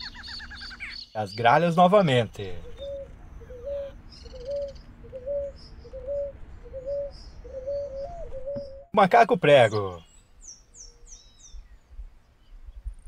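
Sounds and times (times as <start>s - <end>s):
bird calling low note: 0.0s - 12.9s.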